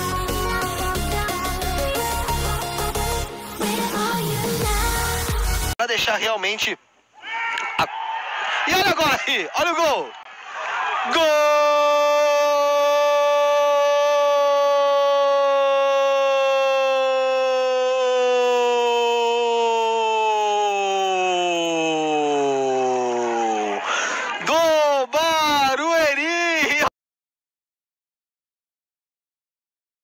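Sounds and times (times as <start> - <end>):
short shouts: 7.2 - 8.7.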